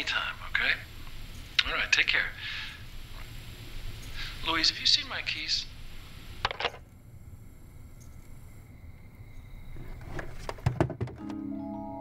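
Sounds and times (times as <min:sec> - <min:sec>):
faint high electrical tone: 0:00.0 - 0:09.8.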